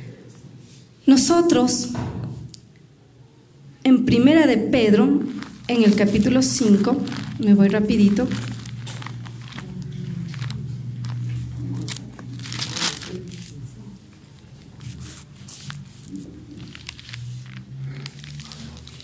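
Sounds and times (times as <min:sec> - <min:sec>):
steady low hum: 0:03.4 - 0:18.2
thin pages turning: 0:05.2 - 0:13.6, 0:14.2 - 0:19.0.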